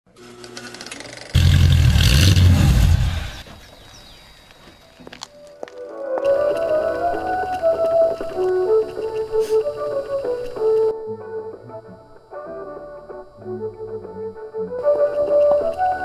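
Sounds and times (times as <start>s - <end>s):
loud low rumble with hiss: 1.4s - 3.6s.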